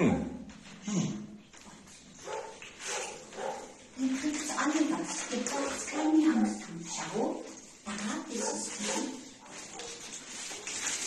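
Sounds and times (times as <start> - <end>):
dogs barking: 2.2 - 3.8.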